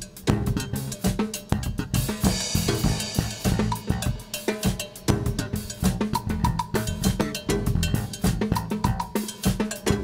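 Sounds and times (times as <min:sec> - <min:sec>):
cowbell struck with sticks: 0:00.0 - 0:10.0
drum kit playing dance beat: 0:00.0 - 0:10.0.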